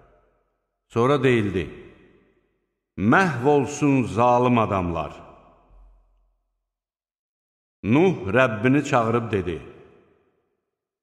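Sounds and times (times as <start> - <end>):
man speaking with echo: 0.9 - 1.9, 3.0 - 5.3, 7.8 - 9.8.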